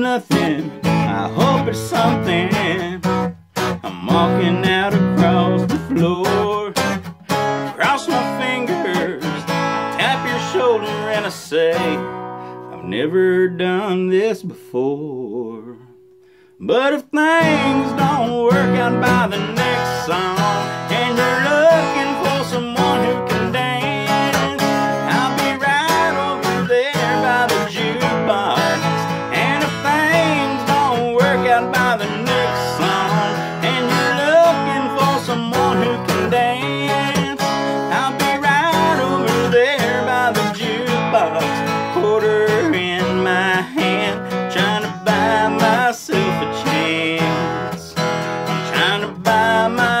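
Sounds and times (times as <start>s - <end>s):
acoustic guitar strumming: 0.0s - 50.0s.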